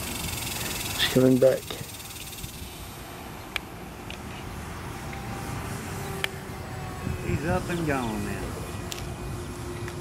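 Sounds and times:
model plane electric motor humming: 0.0 - 2.7, 4.4 - 10.0
outdoor background hiss: 0.0 - 10.0.

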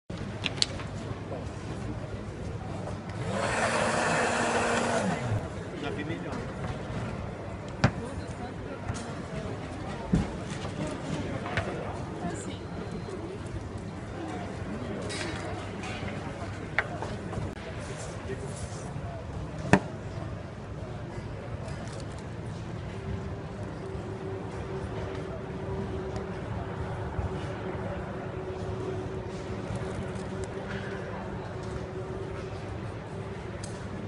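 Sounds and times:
small electric motor humming: 3.2 - 5.4.

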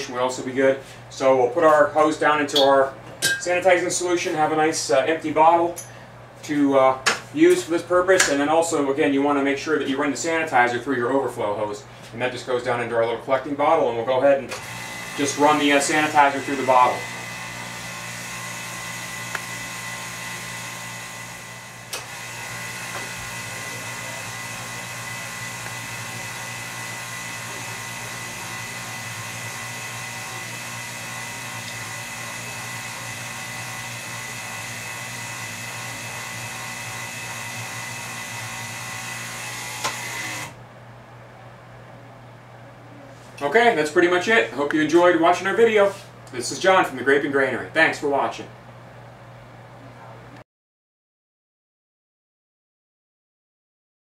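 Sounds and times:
electric pump whining: 14.5 - 40.6.

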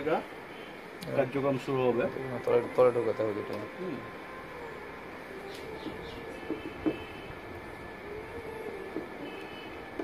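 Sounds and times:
background hum: 2.0 - 10.0.

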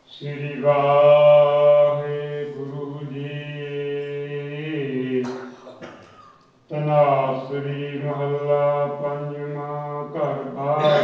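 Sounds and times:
man chanting: 0.1 - 5.4, 6.7 - 11.0.

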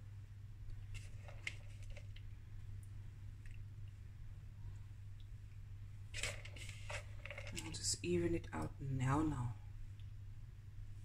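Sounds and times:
steady low hum: 0.0 - 11.0
grated cheese rustling: 6.2 - 7.6.

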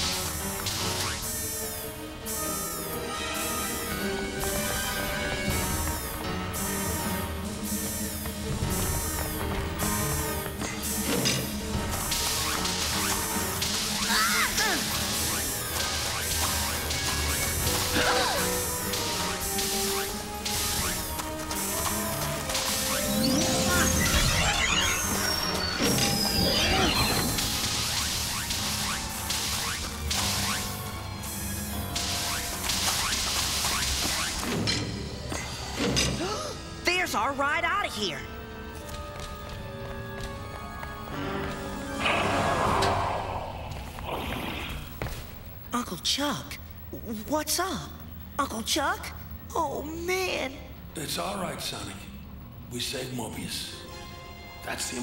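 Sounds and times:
cartoon action music with driving beat: 0.0 - 37.1.

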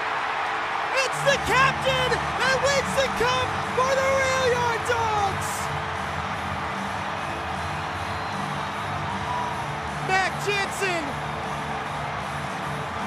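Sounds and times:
arena crowd cheering: 0.0 - 13.0.

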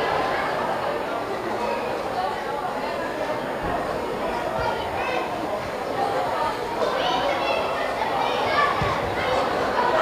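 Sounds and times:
shouts and chatter: 0.0 - 10.0.

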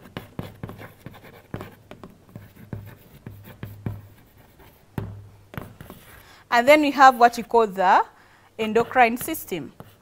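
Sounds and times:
chalk tapping and scratching: 0.0 - 6.2, 8.6 - 10.0.

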